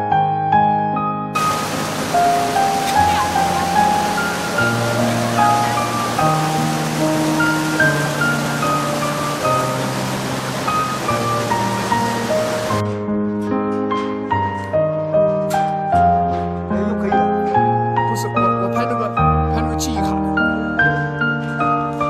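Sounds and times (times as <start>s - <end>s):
slow keyboard music: 0.0s - 22.0s
flowing stream water: 1.4s - 12.8s.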